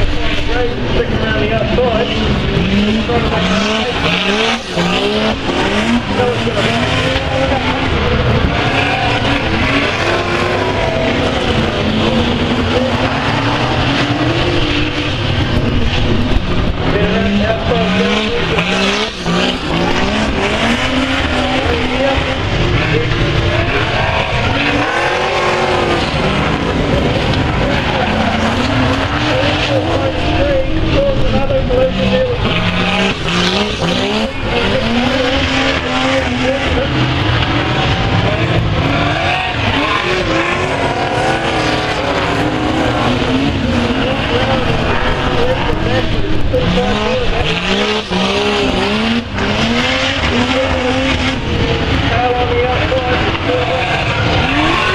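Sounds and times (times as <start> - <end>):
racing car engines revving: 0.0 - 54.9.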